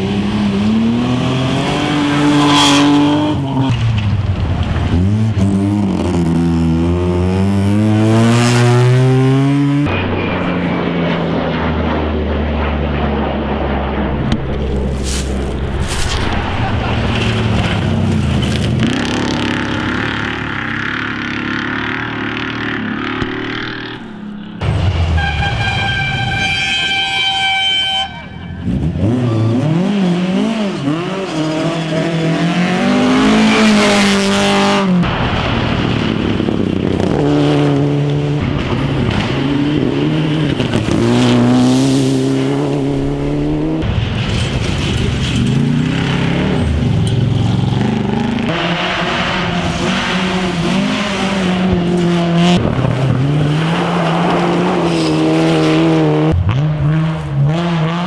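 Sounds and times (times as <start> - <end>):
rally car engines at full throttle: 0.0 - 25.8, 28.2 - 58.0
gravel spray: 14.7 - 18.7, 40.6 - 45.9.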